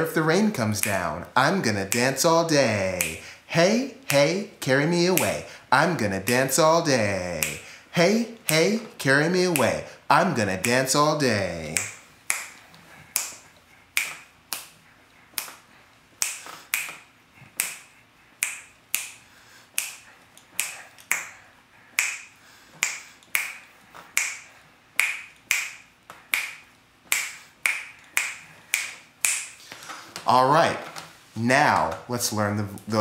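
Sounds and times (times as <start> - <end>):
finger snaps: 0.8 - 1.1, 1.9 - 3.3, 5.2 - 5.4, 7.2 - 7.7, 11.7 - 29.9.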